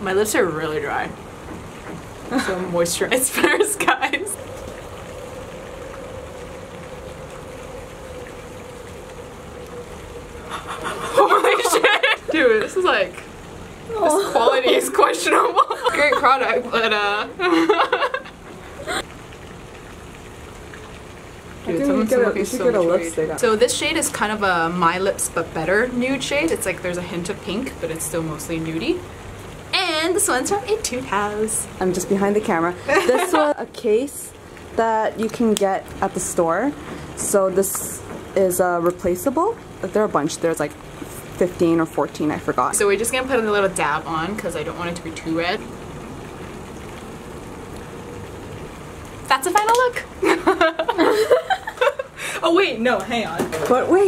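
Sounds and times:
steady hiss: 0.0s - 54.0s.

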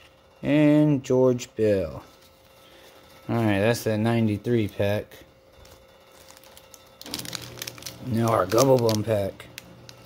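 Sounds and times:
wax paper pack crinkling: 5.6s - 10.0s.

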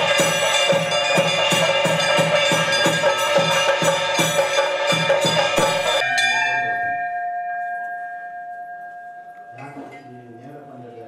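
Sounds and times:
single bell tone ringing: 0.0s - 10.8s
temple bells and percussion: 0.0s - 11.0s.

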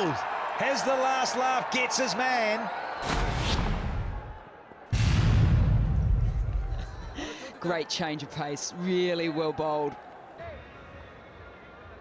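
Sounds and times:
deep boom: 4.9s - 6.9s.

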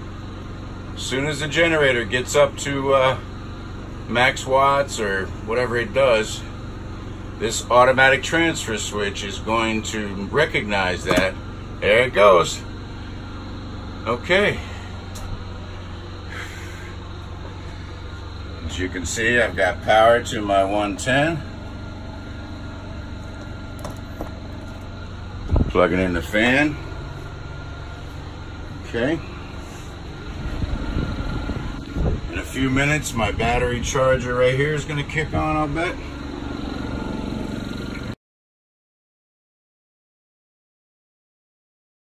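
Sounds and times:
generator engine droning: 0.0s - 38.2s.

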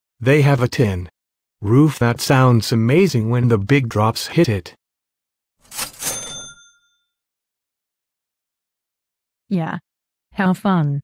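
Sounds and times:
bright metallic ding: 6.0s - 6.9s.

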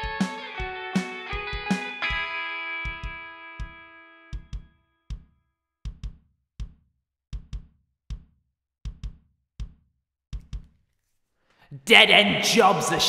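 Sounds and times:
guitar chord ringing: 0.0s - 4.4s.

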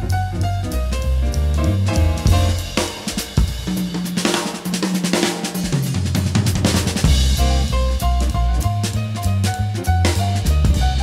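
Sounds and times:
drum kit with cymbals: 0.0s - 11.0s
grand piano: 0.0s - 11.0s.

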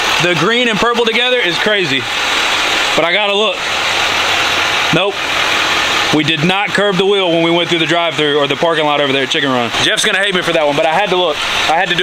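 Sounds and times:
loud rushing hiss: 0.0s - 8.8s, 9.4s - 12.0s.

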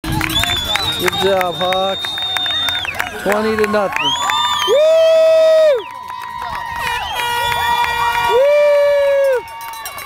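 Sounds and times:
spectators yelling and cheering: 0.0s - 10.0s
high-pitched woo cheer: 0.1s - 10.0s.

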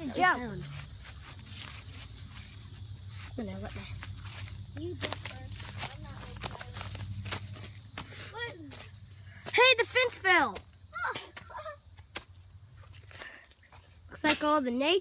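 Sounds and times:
footsteps through leaf litter: 0.8s - 7.8s.

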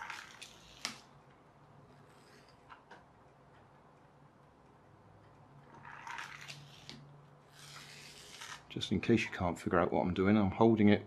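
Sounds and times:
hand rubbing plastic toy car: 5.8s - 8.6s.

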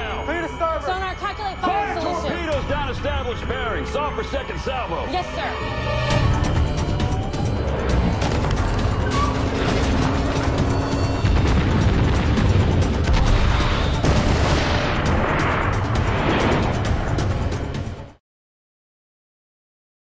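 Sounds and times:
dramatic music: 0.0s - 18.2s
deep booms: 8.2s - 17.4s.

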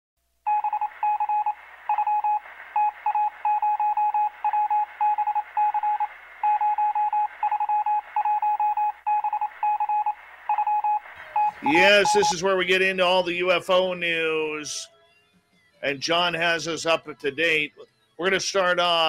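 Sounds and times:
electronic beeps: 0.5s - 12.6s.

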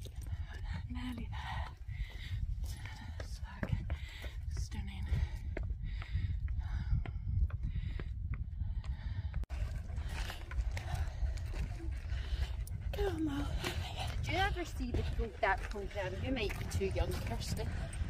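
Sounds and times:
footsteps on stony path: 0.0s - 18.0s
wind buffeting microphone: 0.0s - 18.0s.

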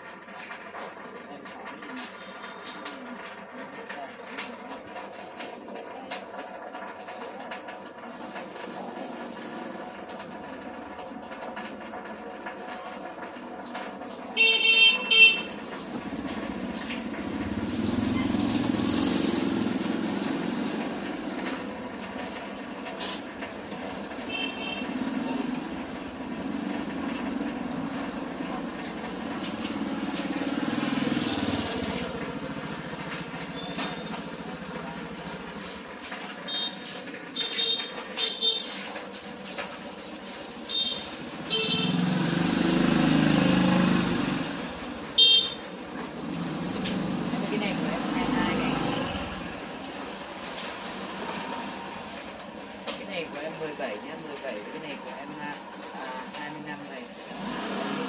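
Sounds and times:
motorbikes passing: 14.9s - 38.5s, 40.5s - 58.0s
horn toots: 40.7s - 42.2s, 45.2s - 45.6s.

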